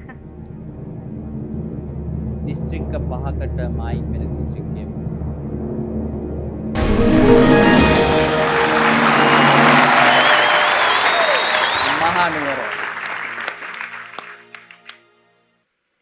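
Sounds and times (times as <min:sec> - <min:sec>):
game show music sting: 0:06.8 - 0:12.7
audience applauding and cheering: 0:06.8 - 0:15.0.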